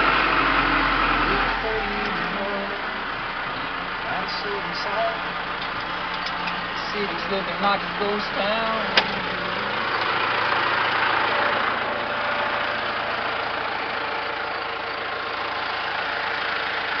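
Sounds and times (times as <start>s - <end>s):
tractor engine running: 0.0s - 17.0s.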